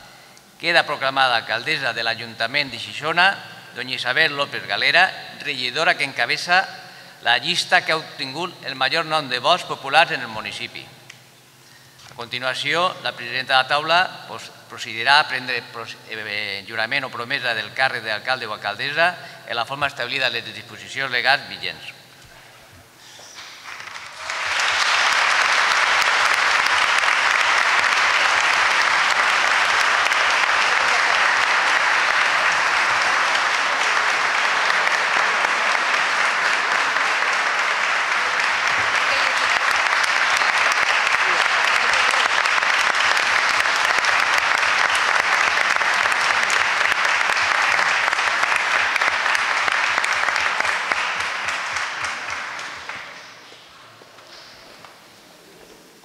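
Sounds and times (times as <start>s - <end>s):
audience applauding: 23.4s - 53.5s.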